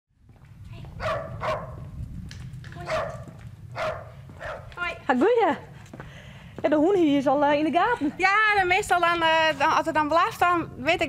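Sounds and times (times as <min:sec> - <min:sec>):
low steady rumble: 0:00.2 - 0:11.0
small dog barking: 0:01.0 - 0:01.8, 0:02.8 - 0:04.8.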